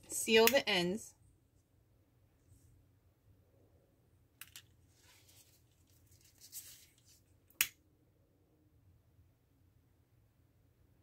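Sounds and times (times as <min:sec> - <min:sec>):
ribbon rustling: 0:04.8 - 0:07.3.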